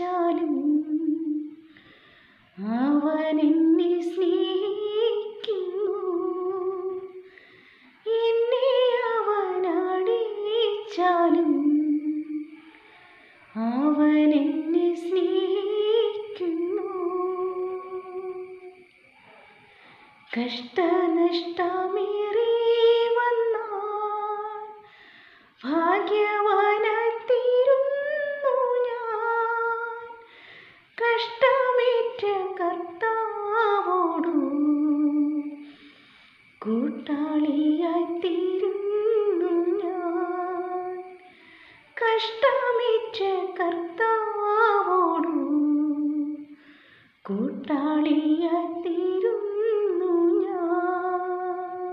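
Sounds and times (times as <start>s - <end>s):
woman singing unaccompanied: 0.0s - 1.7s, 2.6s - 7.4s, 8.0s - 19.1s, 20.2s - 24.9s, 25.6s - 35.8s, 36.4s - 46.6s, 47.2s - 51.9s.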